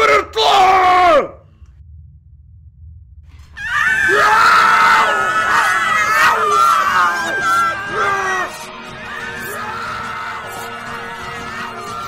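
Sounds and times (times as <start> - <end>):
low rumble: 1.3 - 3.9
crowd screaming battle cry: 3.6 - 12.0.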